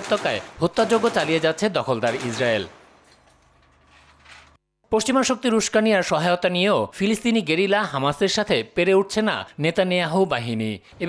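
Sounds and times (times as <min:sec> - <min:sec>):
speech: 0:00.0 - 0:02.7, 0:04.9 - 0:11.0.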